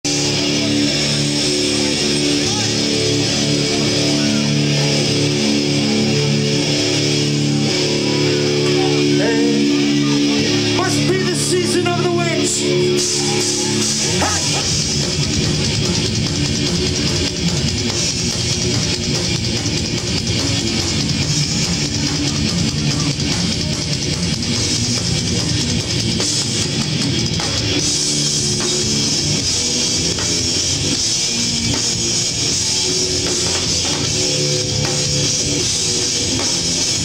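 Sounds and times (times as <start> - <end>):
drum kit: 0.0 - 37.0
electric guitars: 0.1 - 37.0.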